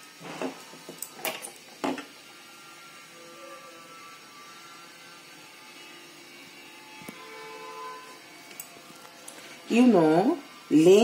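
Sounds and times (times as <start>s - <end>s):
faint background music: 2.9s - 11.0s.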